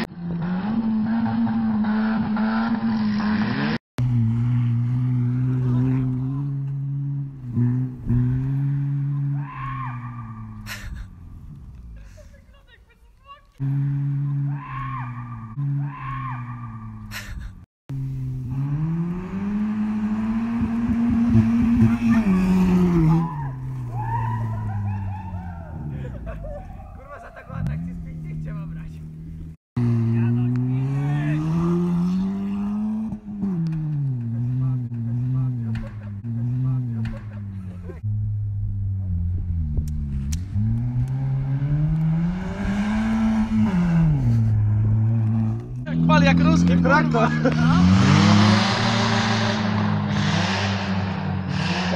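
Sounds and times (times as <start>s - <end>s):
car engine revving hard: 0.0s - 9.4s, 13.6s - 14.6s, 17.9s - 23.3s, 29.8s - 37.2s, 40.4s - 51.9s.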